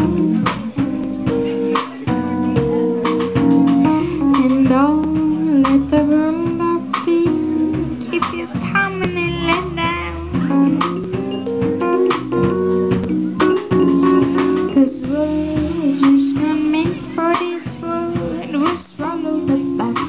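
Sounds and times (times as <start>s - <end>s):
live band playing dance groove: 0.0s - 20.0s.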